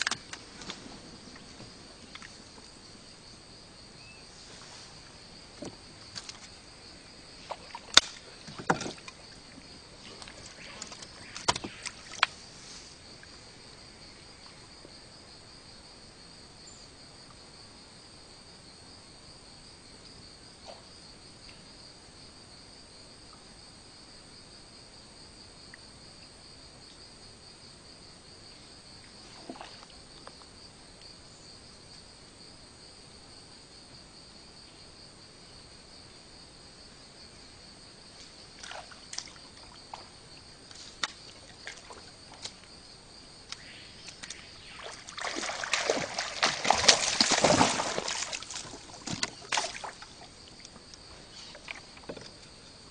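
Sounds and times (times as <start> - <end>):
high-pitched insect chorus: 0.0 - 52.9.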